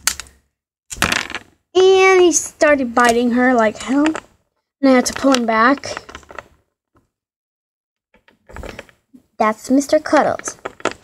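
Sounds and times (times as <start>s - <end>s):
plastic figures scraping and clicking: 3.0s - 7.1s, 9.7s - 11.0s.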